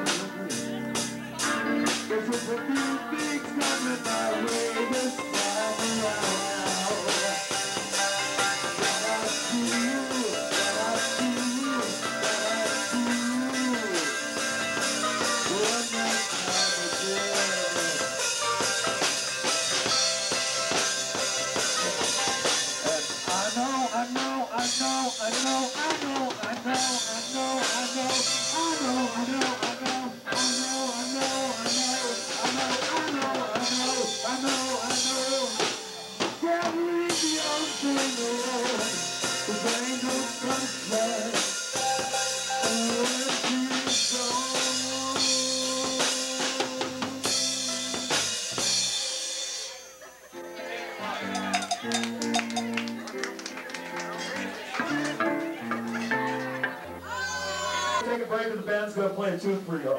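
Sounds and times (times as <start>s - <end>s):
man singing into a microphone: 0.0s - 14.4s, 15.2s - 18.2s, 22.8s - 48.1s
drum kit: 0.0s - 50.2s, 51.0s - 58.0s
electric guitars: 0.0s - 58.1s.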